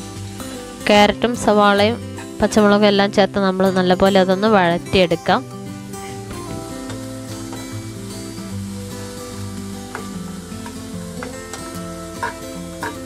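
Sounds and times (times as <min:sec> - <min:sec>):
vegetables sizzling in hot oil: 0:00.0 - 0:13.0
spatula scraping a pan: 0:12.2 - 0:13.0.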